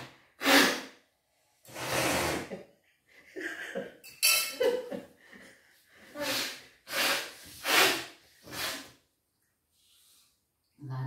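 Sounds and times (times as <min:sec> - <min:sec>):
man blowing nose: 0:00.0 - 0:01.0, 0:01.7 - 0:02.5, 0:06.1 - 0:09.0.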